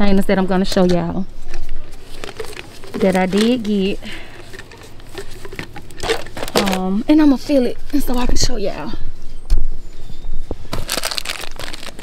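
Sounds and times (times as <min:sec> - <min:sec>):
plastic packaging crinkling: 0:01.9 - 0:07.0, 0:10.7 - 0:12.0.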